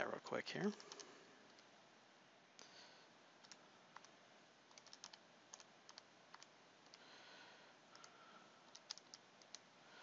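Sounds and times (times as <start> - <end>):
calculator keys clicking: 4.7 - 7.0, 8.7 - 9.6.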